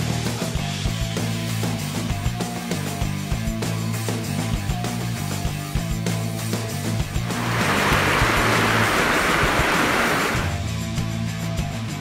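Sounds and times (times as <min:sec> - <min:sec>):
rushing noise: 0:07.2 - 0:10.6.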